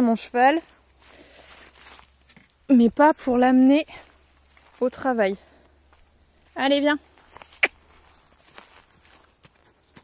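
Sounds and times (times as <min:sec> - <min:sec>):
footsteps on dry grassy earth: 0:00.0 - 0:10.0.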